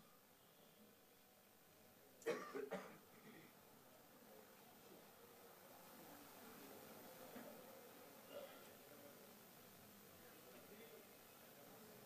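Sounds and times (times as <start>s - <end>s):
person coughing: 2.2s - 3.5s.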